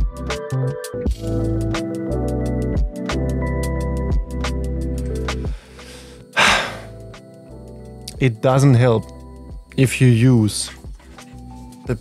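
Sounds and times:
electronic music with steady beat: 0:00.0 - 0:08.2, 0:10.7 - 0:12.0
man sighing loudly: 0:05.6 - 0:07.0.

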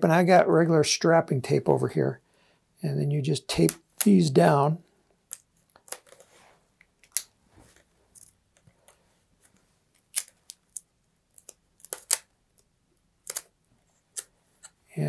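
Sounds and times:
tape rustling: 0:05.3 - 0:14.8.

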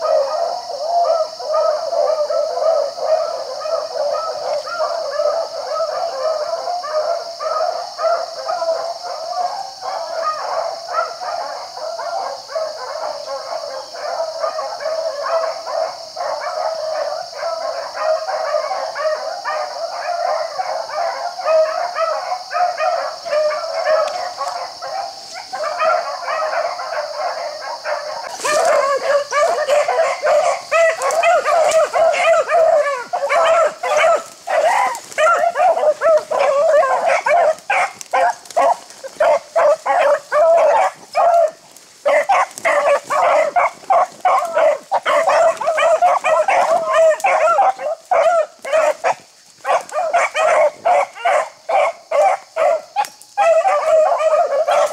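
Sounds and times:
hounds baying: 0:00.0 - 0:54.9.

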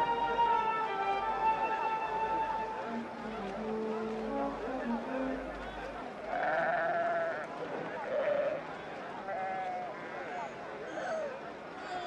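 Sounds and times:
sheep bleating: 0:06.3 - 0:07.5.

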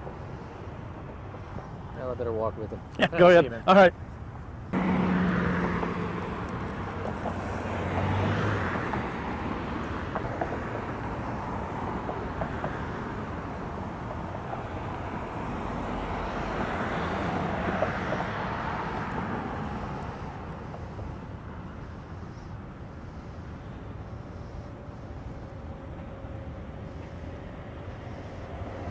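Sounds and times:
passing cars: 0:00.0 - 0:28.9.

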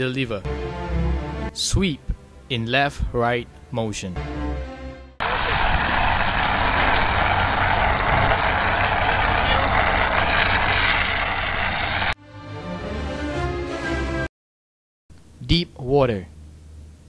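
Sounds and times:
fire extinguisher hissing: 0:05.2 - 0:12.2.

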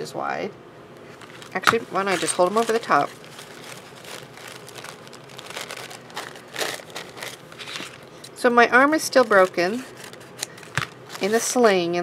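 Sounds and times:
filter paper rustling: 0:01.1 - 0:12.0.

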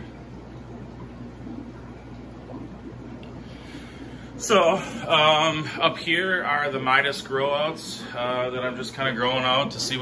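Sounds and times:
low equipment hum: 0:00.0 - 0:10.0
moving water and air bubbles: 0:00.0 - 0:10.0.

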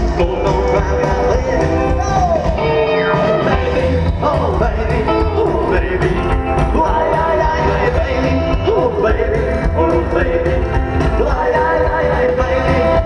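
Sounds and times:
rockabilly band playing live: 0:00.0 - 0:13.0.

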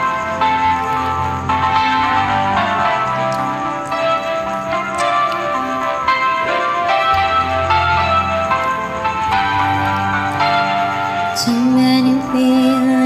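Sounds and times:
karaoke backing track: 0:11.4 - 0:13.0.

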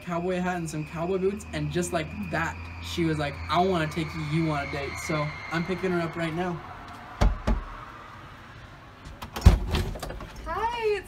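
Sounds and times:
door thump: 0:07.2 - 0:07.7.

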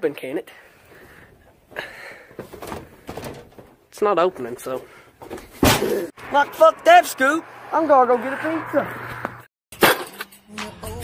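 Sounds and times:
wooden door rattling in frame: 0:02.4 - 0:03.8.

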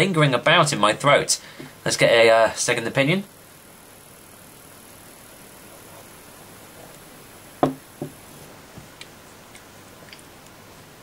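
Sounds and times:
faint high whine: 0:00.0 - 0:11.0
room hiss: 0:00.0 - 0:11.0.

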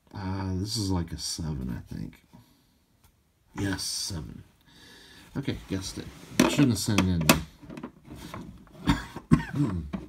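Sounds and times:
man coughing: 0:08.8 - 0:09.9.

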